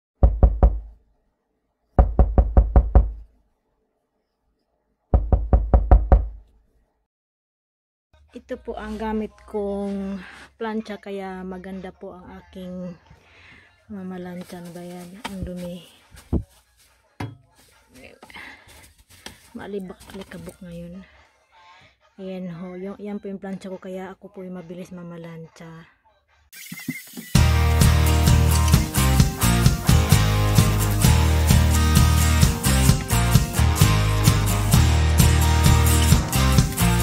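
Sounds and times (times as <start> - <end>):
rapid knocking: 2.0 - 3.2, 5.2 - 6.4.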